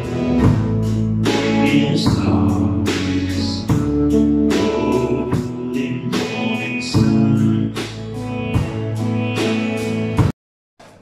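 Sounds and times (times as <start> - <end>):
drum beat: 0.0 - 4.7
country band playing: 0.0 - 10.3
man singing: 1.2 - 8.4.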